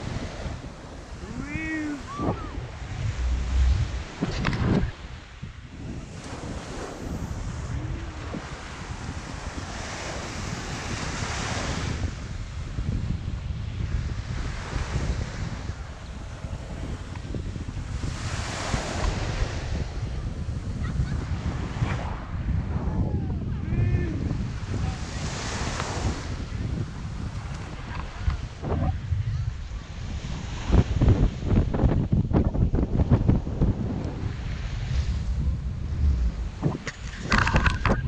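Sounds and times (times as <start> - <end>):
surf breaking on beach: 0.0 - 38.0
wind buffeting microphone: 0.0 - 38.0.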